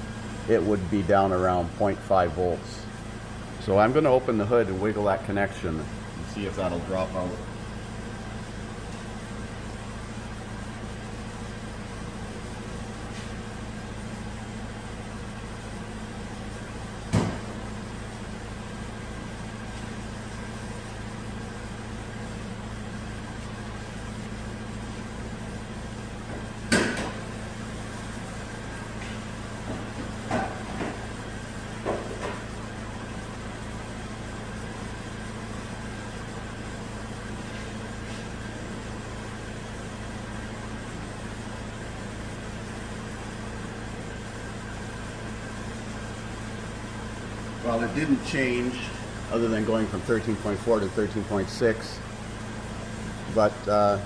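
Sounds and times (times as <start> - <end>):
car engine idling: 0.0 - 54.0
sharp knocks: 17.1 - 17.5, 26.7 - 27.2.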